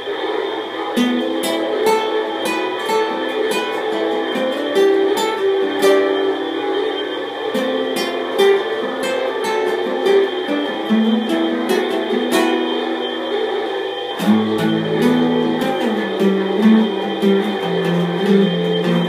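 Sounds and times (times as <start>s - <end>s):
acoustic guitar plucking: 0.0s - 19.0s.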